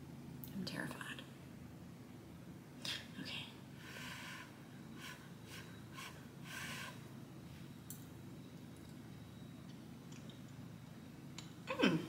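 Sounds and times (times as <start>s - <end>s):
faint breathing puffs: 3.8s - 7.0s.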